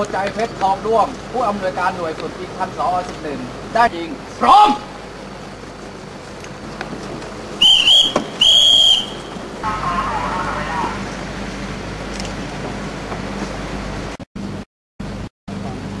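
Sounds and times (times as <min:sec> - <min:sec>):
whistle blasts: 0:07.6 - 0:10.0.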